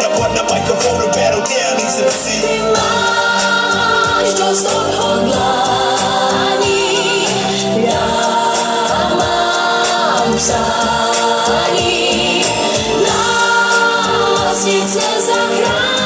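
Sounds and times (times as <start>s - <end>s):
full band backing track: 0.0s - 16.0s
voices singing pop song: 0.0s - 16.0s.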